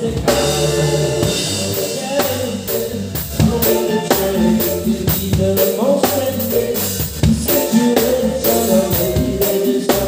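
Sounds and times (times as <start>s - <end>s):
drum kit hits: 0.0s - 10.0s
live rock band playing: 0.0s - 10.0s.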